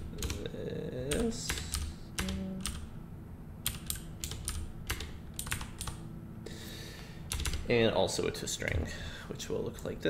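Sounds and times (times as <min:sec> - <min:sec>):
keyboard keys clicking: 0:03.6 - 0:06.0, 0:07.3 - 0:07.7.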